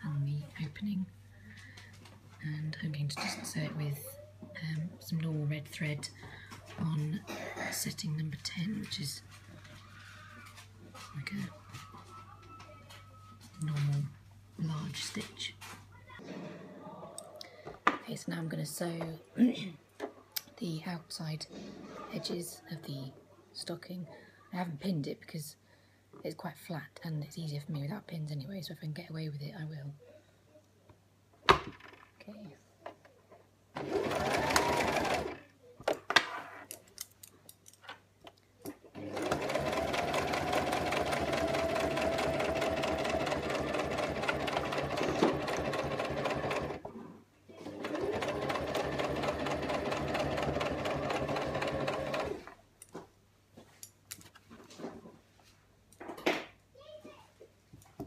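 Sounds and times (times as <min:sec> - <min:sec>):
sewing machine stitching: 0:33.8 - 0:35.5, 0:38.9 - 0:46.9, 0:47.6 - 0:52.6.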